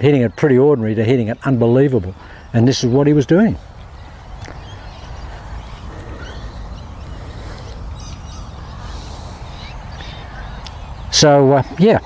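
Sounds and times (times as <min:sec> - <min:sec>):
faint bird calls: 0:00.0 - 0:12.0.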